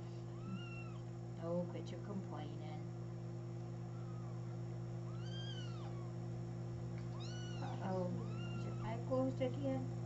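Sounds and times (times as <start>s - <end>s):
steady low hum: 0.0s - 10.0s
kitten mewing: 0.3s - 1.1s, 3.9s - 6.2s, 7.1s - 9.0s.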